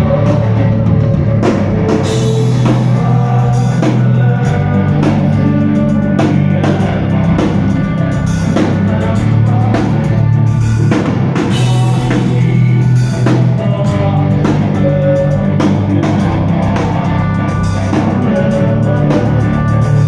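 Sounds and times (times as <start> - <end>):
distorted electric guitars and bass: 0.0 - 20.0
drum kit beat: 0.0 - 20.0.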